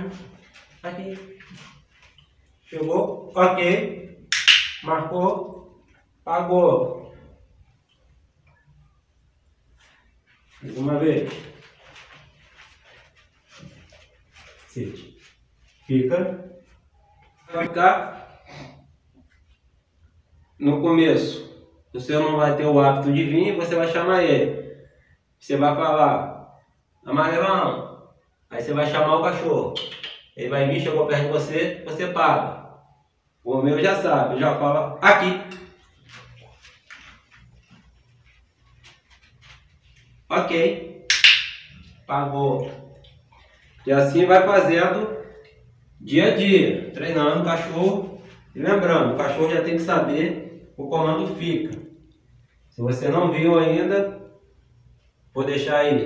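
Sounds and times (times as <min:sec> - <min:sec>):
shuffling footsteps: 0:00.0 - 0:03.4, 0:09.4 - 0:17.7, 0:35.1 - 0:41.0
dog paws clicking on floor: 0:35.5 - 0:40.3.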